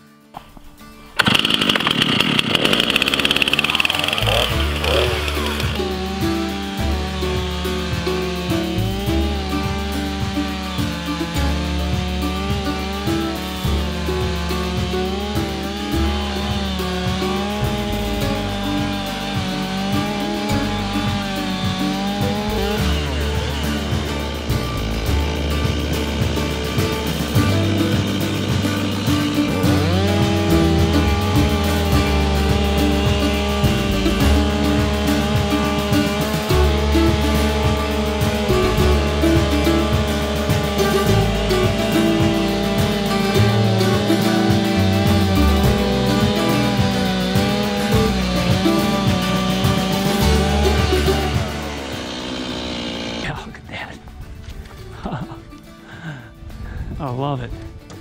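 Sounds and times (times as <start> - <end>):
chainsaw cutting log: 1.2 - 53.6.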